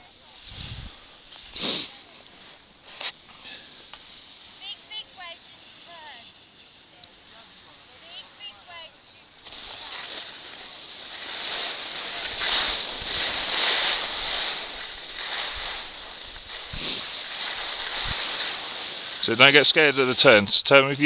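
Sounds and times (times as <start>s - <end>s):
wind on microphone: 0.4s - 1.1s, 12.0s - 17.1s, 17.7s - 18.4s
skis scraping over snow: 1.3s - 3.2s, 4.1s - 21.0s.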